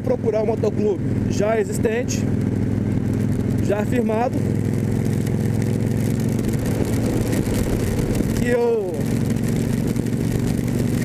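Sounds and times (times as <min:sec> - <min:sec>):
motorcycle engine running: 0:00.0 - 0:11.0
road noise: 0:00.0 - 0:11.0
wind rush: 0:02.8 - 0:11.0.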